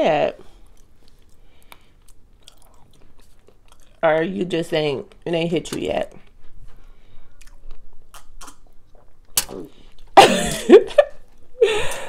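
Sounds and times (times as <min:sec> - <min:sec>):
chewing chicken wings: 0:00.6 - 0:04.0.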